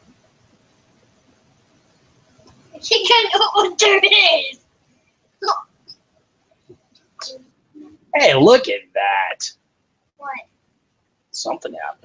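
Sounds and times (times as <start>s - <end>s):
person talking: 2.8s - 4.6s, 7.2s - 9.5s, 11.4s - 12.0s.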